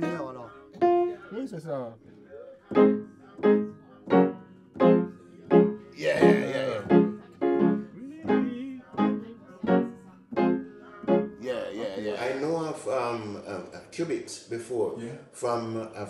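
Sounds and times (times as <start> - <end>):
piano chords: 0.0 - 1.3, 2.7 - 11.4.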